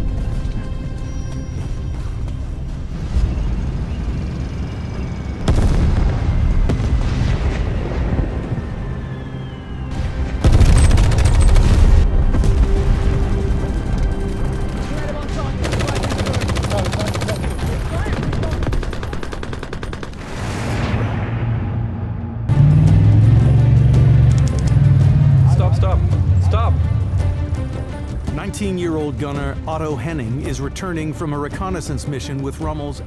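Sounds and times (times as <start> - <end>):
film music score: 0.0 - 33.0
explosions: 5.4 - 9.0, 20.1 - 23.1
machine-gun fire: 10.4 - 12.0, 15.6 - 20.3.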